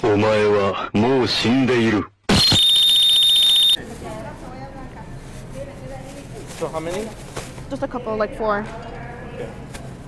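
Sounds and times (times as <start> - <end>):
electronic buzzer: 2.3 - 3.8.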